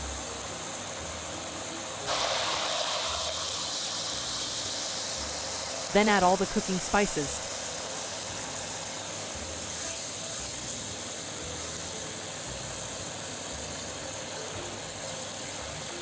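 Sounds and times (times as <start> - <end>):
stir-fry sizzling in a pan: 0.0 - 16.0.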